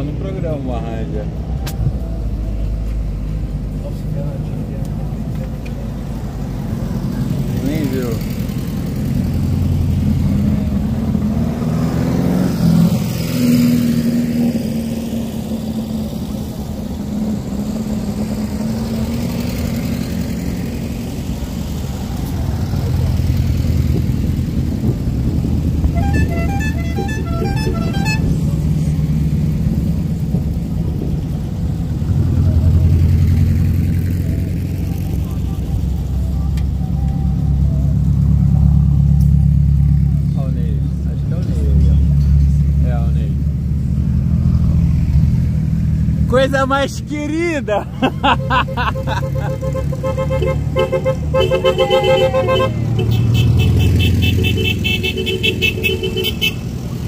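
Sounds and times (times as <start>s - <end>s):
buggy engines driving past: 0.0s - 57.0s
rapid horn toots: 25.8s - 28.4s, 48.3s - 56.7s.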